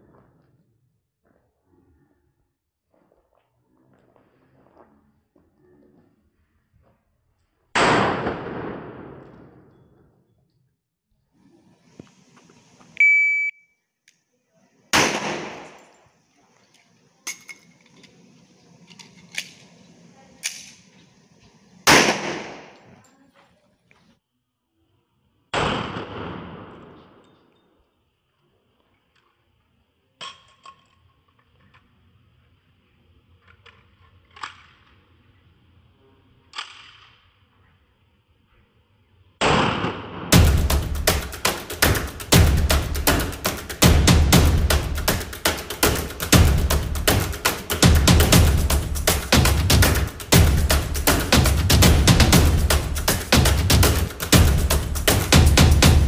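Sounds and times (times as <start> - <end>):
pistol shot echoing: 7.8 - 9.6, 15.0 - 15.9, 21.9 - 22.9, 25.6 - 27.2, 39.4 - 40.5
shot timer beep: 13.0 - 13.7
loud sudden noise: 40.4 - 56.0.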